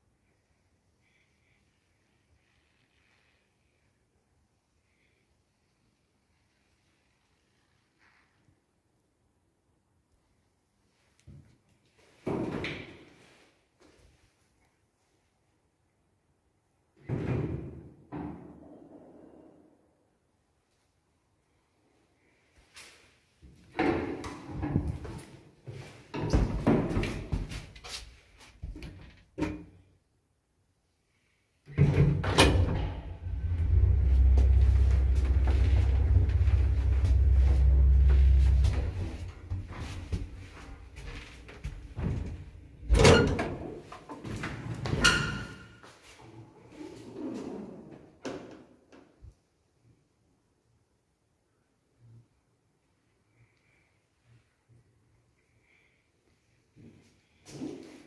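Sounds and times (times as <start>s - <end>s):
metal lift door banging: 31.8s - 39.5s.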